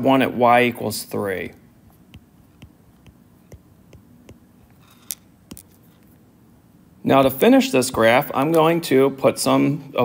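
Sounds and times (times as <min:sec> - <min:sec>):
stylus tapping on glass screen: 0:01.9 - 0:05.8.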